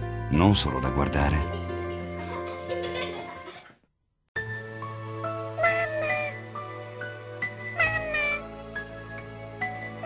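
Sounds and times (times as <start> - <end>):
soft background music: 0.0 - 3.6, 4.4 - 10.0
small child wailing: 7.8 - 8.4.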